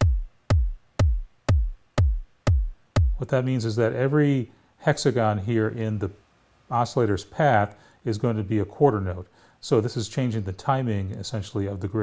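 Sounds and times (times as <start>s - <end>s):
electronic bass drum kicks: 0.0s - 3.2s.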